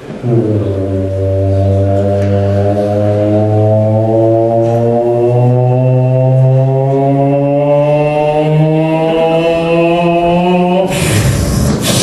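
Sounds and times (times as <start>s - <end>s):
low droning tone: 0.2s - 12.0s.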